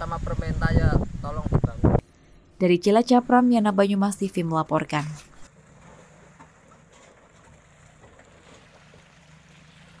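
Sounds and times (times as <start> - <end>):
road noise: 4.6 - 10.0
pickup truck engine humming: 5.5 - 10.0.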